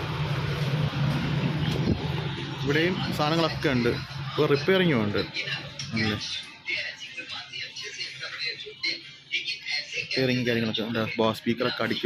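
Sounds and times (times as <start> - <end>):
steady low hum: 0.0 - 10.7.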